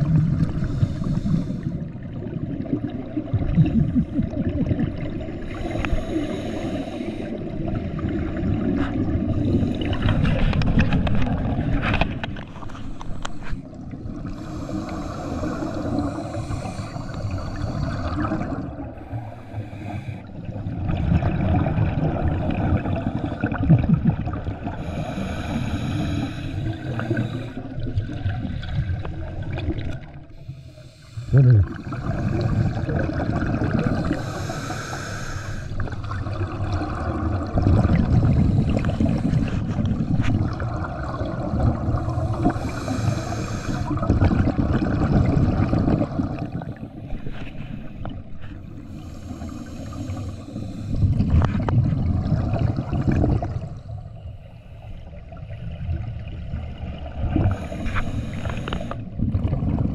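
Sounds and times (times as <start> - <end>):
low rumble of water movement: 0.0 - 59.9
underwater air bubbling: 0.0 - 59.9.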